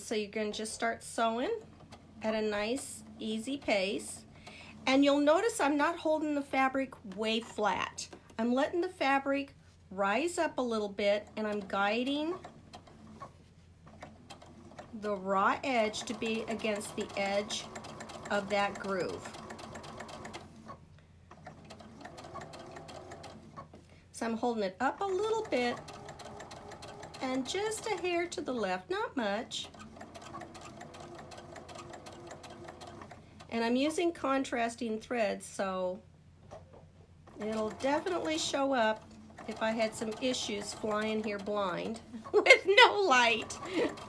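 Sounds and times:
sewing machine stitching: 0:00.5 - 0:06.0, 0:10.9 - 0:23.8, 0:24.8 - 0:34.1, 0:36.5 - 0:44.0.

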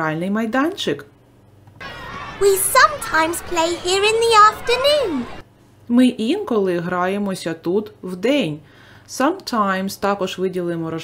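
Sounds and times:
child-like voice speaking: 0:02.4 - 0:05.3.

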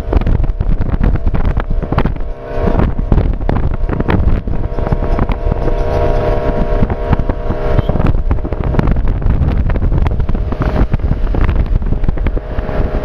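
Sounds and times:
road noise: 0:00.0 - 0:13.0
vehicle engine hum: 0:00.0 - 0:13.0
wind buffeting microphone: 0:00.0 - 0:13.0.

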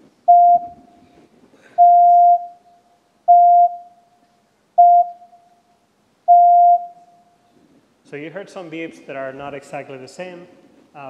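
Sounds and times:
pure-tone test beeps: 0:00.3 - 0:00.8, 0:01.8 - 0:02.7, 0:03.3 - 0:04.0, 0:04.8 - 0:05.6, 0:06.3 - 0:07.3.

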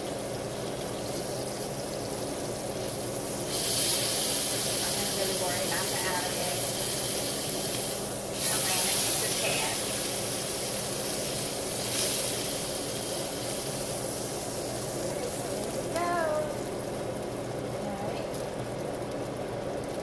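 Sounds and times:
meat sizzling in a skillet: 0:00.0 - 0:20.0.

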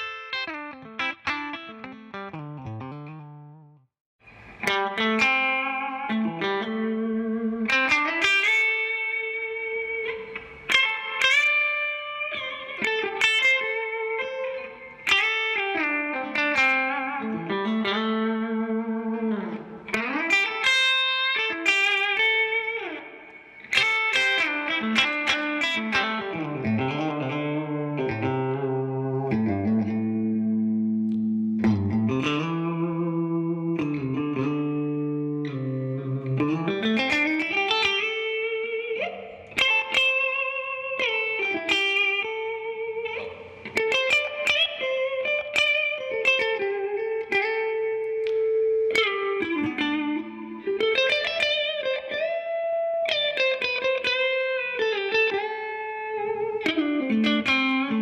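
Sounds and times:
electric guitar through amplifier: 0:00.0 - 0:58.0.

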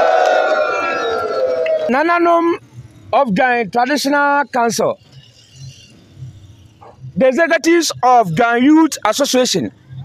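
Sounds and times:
outdoor gathering murmur: 0:00.0 - 0:10.0.

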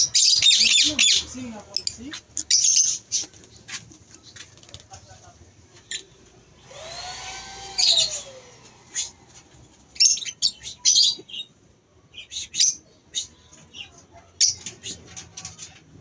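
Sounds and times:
lovebirds chirping: 0:00.0 - 0:15.8.

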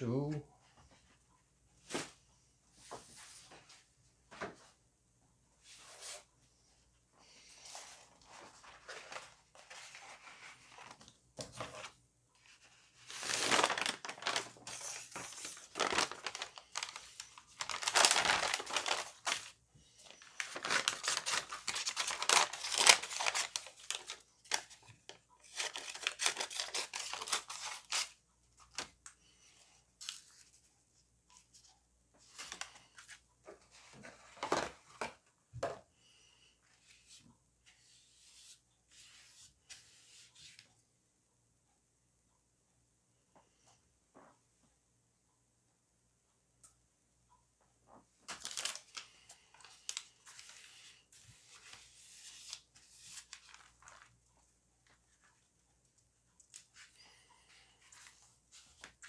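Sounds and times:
paper rustling and tearing: 0:07.7 - 0:19.5, 0:20.1 - 0:28.9, 0:48.3 - 0:54.1.

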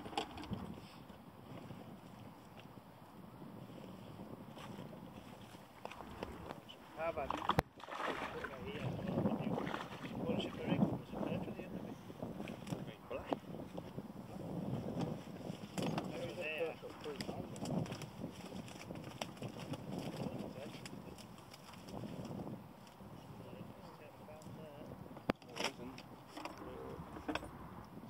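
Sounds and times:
wind on microphone: 0:00.0 - 0:28.0
people talking indistinctly: 0:06.2 - 0:07.6, 0:08.2 - 0:13.4, 0:16.0 - 0:17.6, 0:23.4 - 0:27.1
wet net rustling and splashing: 0:07.3 - 0:08.8.

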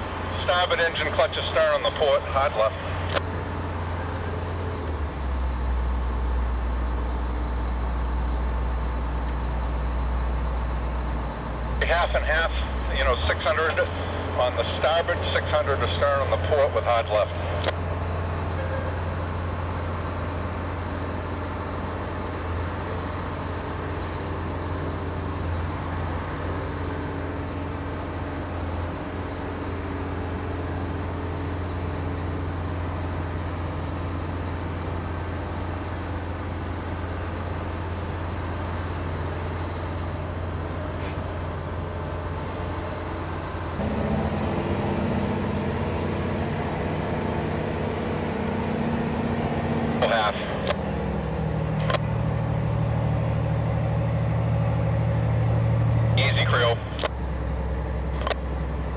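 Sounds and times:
tugboat engines humming: 0:00.0 - 0:58.9.

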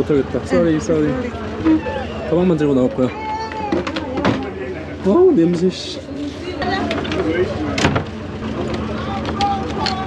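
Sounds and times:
ferry engine drone: 0:00.0 - 0:10.0
passengers' voices: 0:00.0 - 0:10.0.

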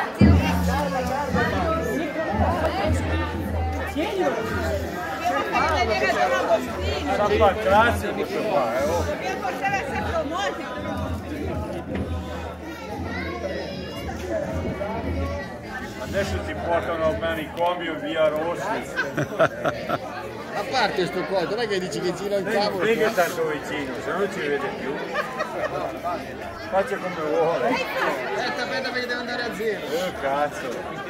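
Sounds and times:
people chattering: 0:00.0 - 0:31.0
people talking: 0:00.0 - 0:31.0.

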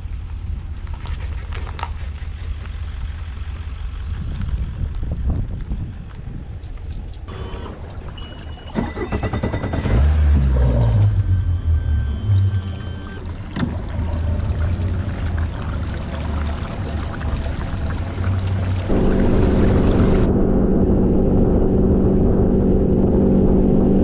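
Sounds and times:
truck and trailer rumbling: 0:00.0 - 0:23.0
water washing around hull: 0:06.5 - 0:20.3
outboard motor idling: 0:07.3 - 0:20.3.

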